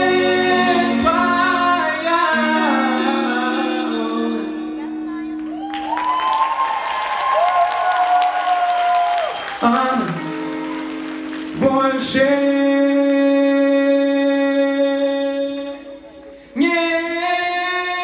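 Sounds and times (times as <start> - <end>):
man singing into a microphone: 0.0 - 4.8, 9.6 - 10.4, 11.5 - 18.0
audience applause: 5.5 - 12.2.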